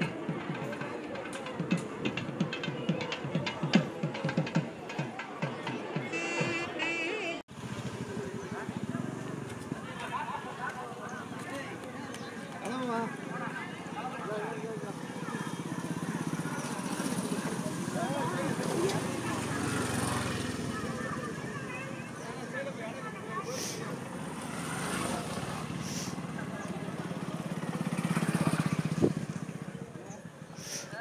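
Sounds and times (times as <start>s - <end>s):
motorcycle engines passing slowly: 7.5s - 31.0s.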